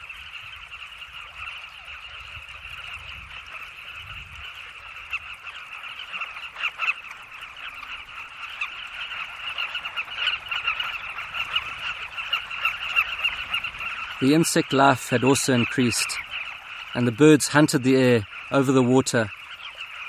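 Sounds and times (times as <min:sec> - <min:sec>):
chorus of chattering bird calls: 0:00.0 - 0:20.0.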